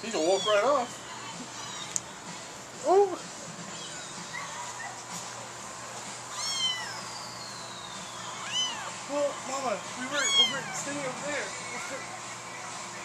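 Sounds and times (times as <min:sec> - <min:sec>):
kitten mewing: 0:06.3 - 0:07.0, 0:10.2 - 0:10.8.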